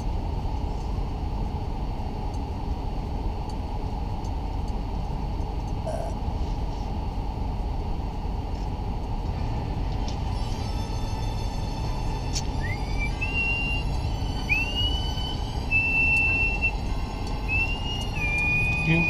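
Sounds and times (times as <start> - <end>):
thin high squeals: 17.4 - 19.0.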